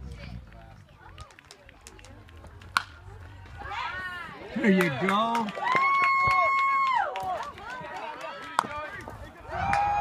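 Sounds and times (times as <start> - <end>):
baseball bat hitting ball: 2.7 - 3.0.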